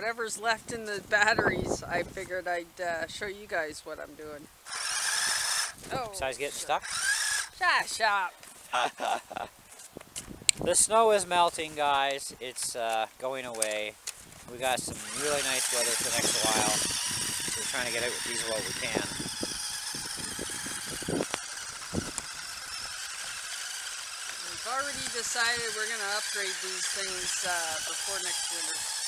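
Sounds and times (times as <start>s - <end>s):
electric motor whining: 4.6s - 7.6s, 14.4s - 29.0s
person's voice: 5.9s - 6.8s.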